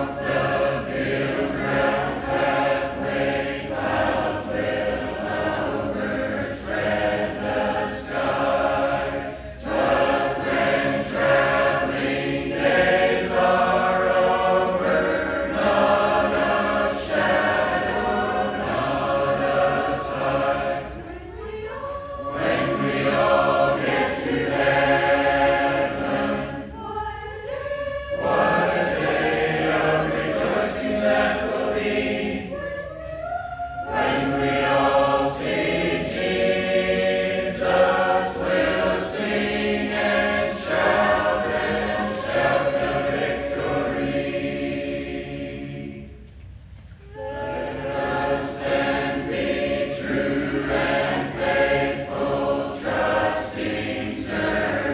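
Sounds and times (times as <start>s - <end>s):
congregation singing a hymn: 0.0s - 46.4s, 47.0s - 54.9s.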